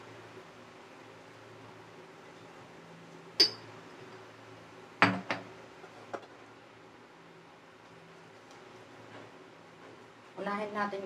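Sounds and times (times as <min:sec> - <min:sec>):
glass jar clinking: 0:03.4 - 0:03.7.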